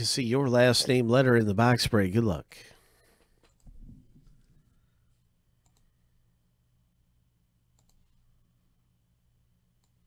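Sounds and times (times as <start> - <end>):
faint low hum: 0.0 - 10.0
faint clicks: 5.6 - 5.9, 7.7 - 8.2.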